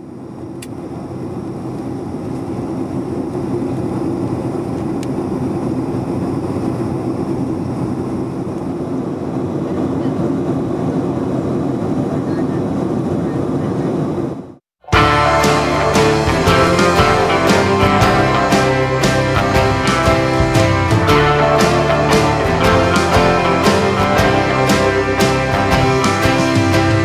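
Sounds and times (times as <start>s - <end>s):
airliner cabin drone: 0.0s - 27.0s.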